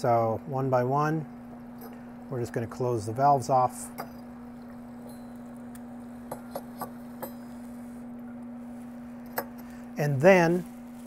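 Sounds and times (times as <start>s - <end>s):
generator humming: 0.0s - 11.0s
torch valve clicks: 5.0s - 7.7s.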